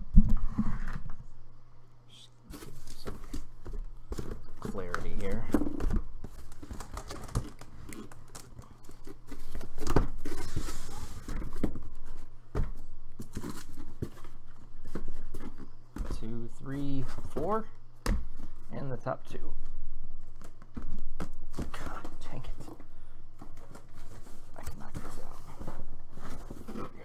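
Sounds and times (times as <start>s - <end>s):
steady low hum: 0.0s - 27.0s
cardboard boxes scraping and knocking: 9.0s - 16.3s.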